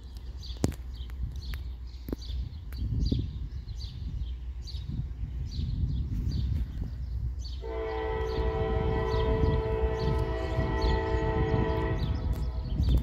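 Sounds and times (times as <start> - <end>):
birds chirping: 0.0 - 13.0
locomotive air horn: 7.6 - 12.6.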